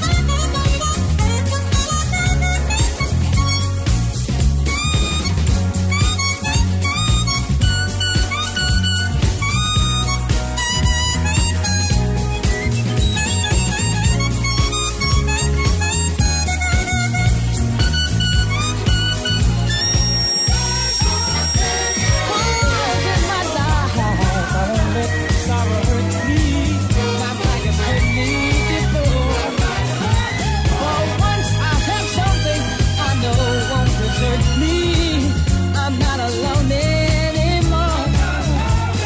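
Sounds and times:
harmonica melody: 0.0 - 34.8
drums: 0.0 - 39.0
electric bass: 0.0 - 39.0.

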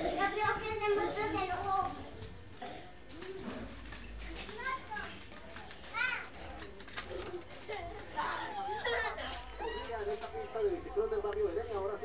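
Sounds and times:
small children playing and squealing: 0.0 - 5.2, 5.8 - 10.5.

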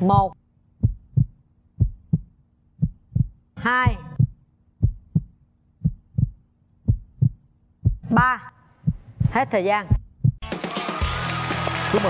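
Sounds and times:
heartbeat double thump: 0.0 - 10.4.

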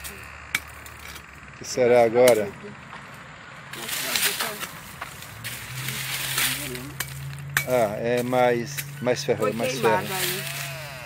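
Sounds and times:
voices murmuring: 0.0 - 11.0
rustling in dry leaves: 3.2 - 7.5, 9.4 - 11.0.

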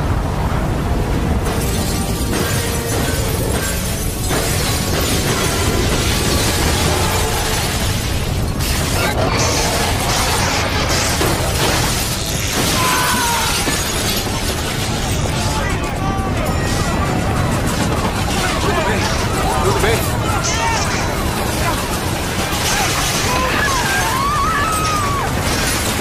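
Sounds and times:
rumble of crashing debris: 1.2 - 26.0
glass shattering: 1.4 - 15.9, 16.5 - 26.0.

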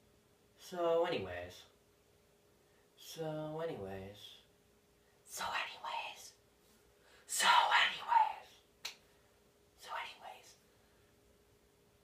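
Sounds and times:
person whispering: 5.3 - 6.4, 7.3 - 8.7, 9.8 - 10.6.

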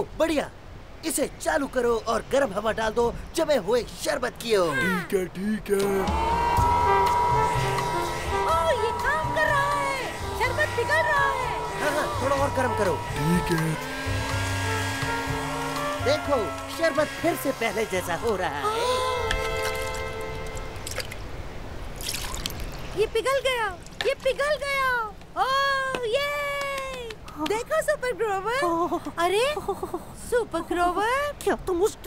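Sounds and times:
hair dryer motor whine: 5.8 - 20.8
background music: 5.8 - 21.1
liquid dripping: 21.9 - 23.0
liquid pouring into a cup: 22.0 - 22.9.

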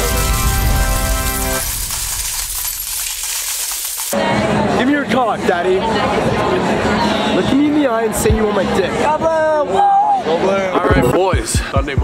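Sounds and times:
coins spilling and clinking: 0.0 - 4.2.

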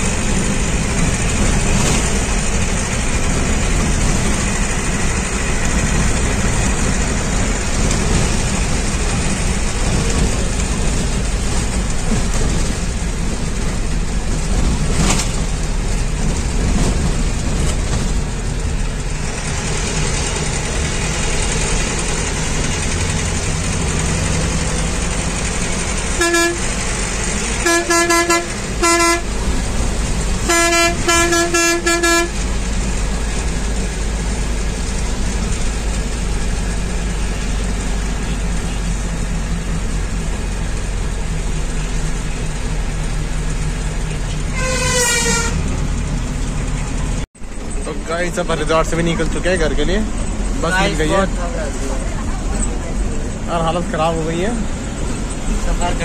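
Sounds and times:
bus engine and road noise: 0.0 - 56.0
horn honking short blasts: 26.2 - 26.7, 27.6 - 29.3, 30.4 - 32.4, 44.5 - 45.7.

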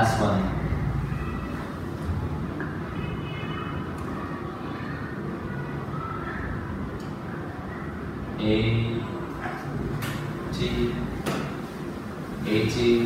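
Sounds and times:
faint far-off voices: 0.0 - 13.0.

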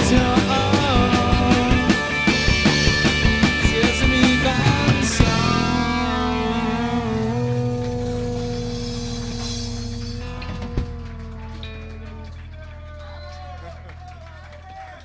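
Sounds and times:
live rock band playing: 0.0 - 14.0.

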